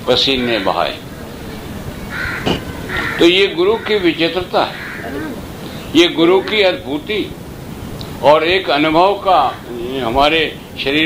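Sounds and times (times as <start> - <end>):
man talking: 0.0 - 1.0, 3.2 - 7.4, 8.2 - 11.0
old recording hiss and rumble: 0.0 - 11.0
harsh bird call: 2.0 - 7.1.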